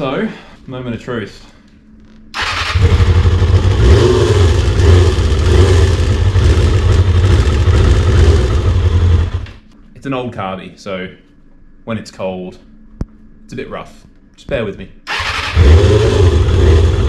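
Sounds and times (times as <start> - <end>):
motorcycle engine idling: 2.4 - 9.7.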